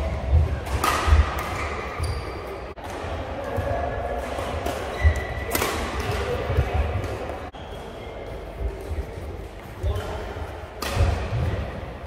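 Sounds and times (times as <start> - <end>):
racket hitting shuttlecock: 0.3 - 3.1, 4.2 - 7.4, 10.7 - 11.8
shoes squeaking on court floor: 1.6 - 2.7, 4.8 - 5.5.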